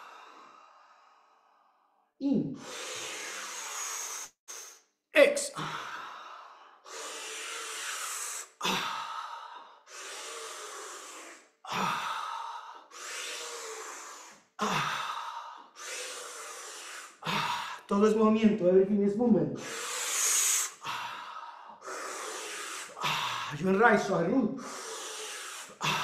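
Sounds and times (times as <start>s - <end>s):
man breathing forcefully: 0.0s - 1.8s, 2.5s - 4.9s, 5.6s - 17.9s, 19.6s - 23.6s, 24.6s - 26.0s.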